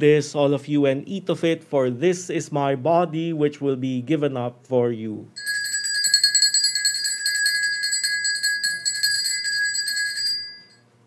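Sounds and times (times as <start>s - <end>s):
altar bells ringing: 5.4s - 10.8s.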